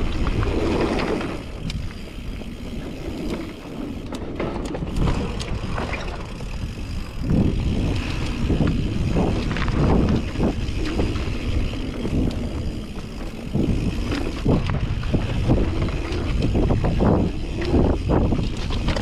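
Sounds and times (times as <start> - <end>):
bike knocking and rattling: 0.0 - 19.0
bike tyres on dirt: 0.0 - 19.0
wind rumble on microphone: 0.0 - 19.0.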